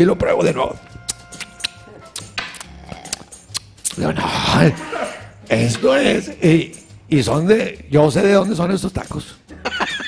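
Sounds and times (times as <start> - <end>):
sharp clicks and taps: 1.1 - 4.0.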